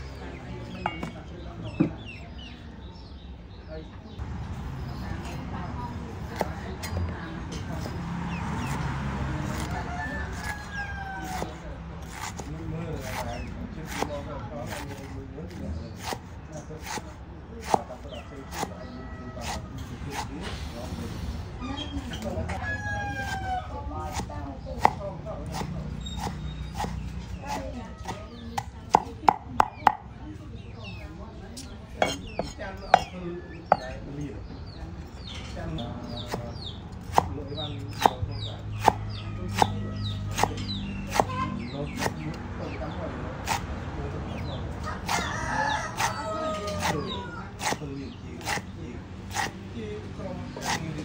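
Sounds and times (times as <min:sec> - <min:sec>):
rooster crowing: 0:09.6 - 0:11.6, 0:22.5 - 0:23.8, 0:44.8 - 0:47.5
cleaver chopping on wooden board: 0:10.4 - 0:14.1, 0:14.7 - 0:20.3, 0:23.2 - 0:30.1, 0:32.0 - 0:33.8, 0:36.2 - 0:42.2, 0:45.1 - 0:45.3, 0:45.9 - 0:48.7, 0:49.3 - 0:49.6, 0:50.6 - 0:51.0.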